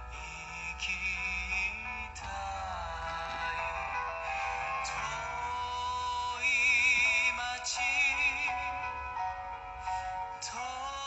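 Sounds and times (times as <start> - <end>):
song with male vocal on radio: 0.0 - 11.0.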